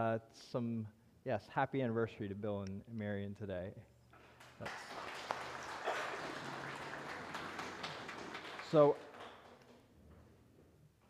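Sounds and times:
congregation applauding: 4.2s - 9.9s.

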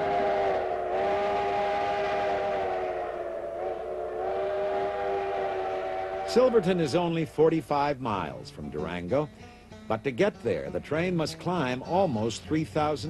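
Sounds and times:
steam locomotive whistle: 0.0s - 7.3s.

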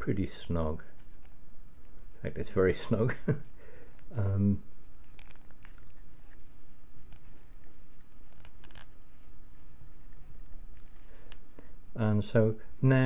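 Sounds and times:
faint handling rubbing: 0.0s - 13.0s.

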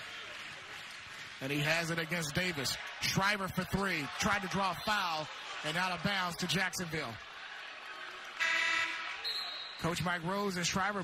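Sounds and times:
arena horn blast: 8.4s - 9.2s.

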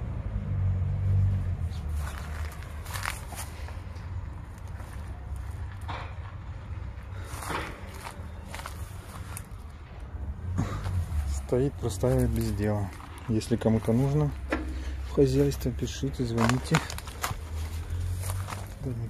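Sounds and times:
footsteps crunching on dry ground: 1.7s - 6.4s, 7.1s - 9.8s, 10.8s - 19.0s.

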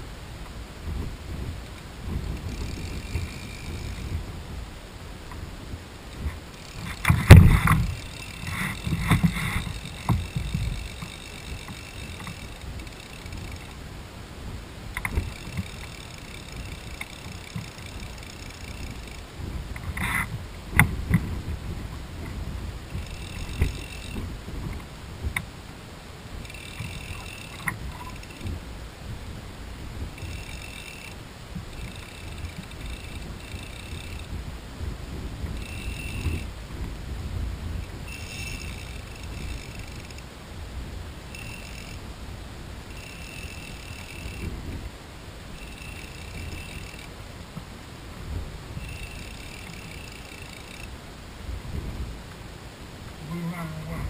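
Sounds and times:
wind rumble on microphone: 0.0s - 50.0s, 50.8s - 54.0s
fishing reel click drag buzzing: 2.3s - 4.2s, 6.5s - 13.8s, 14.9s - 19.3s, 22.9s - 24.2s, 26.4s - 28.5s, 30.2s - 34.3s, 35.6s - 36.5s, 38.1s - 40.3s, 41.3s - 42.0s, 42.9s - 44.5s, 45.6s - 47.1s, 48.8s - 50.9s.

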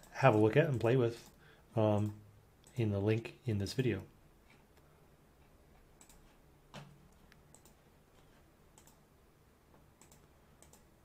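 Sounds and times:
computer mouse clicks: 6.0s - 6.4s, 7.1s - 7.8s, 8.7s - 9.0s, 10.0s - 10.9s.

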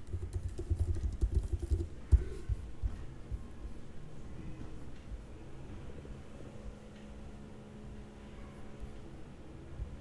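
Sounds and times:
computer keyboard typing: 0.0s - 2.3s.

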